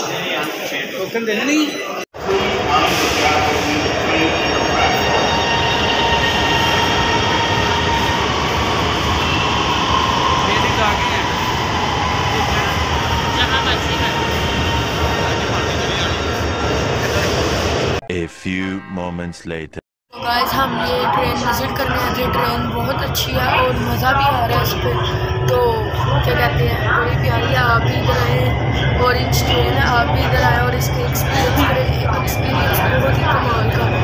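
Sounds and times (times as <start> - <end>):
metro train rumbling: 2.2 - 19.0, 20.2 - 34.0.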